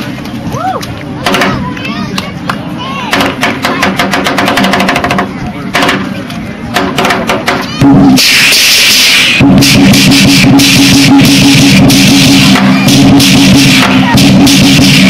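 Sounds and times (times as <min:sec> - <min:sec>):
loud music: 0:07.8 - 0:15.0.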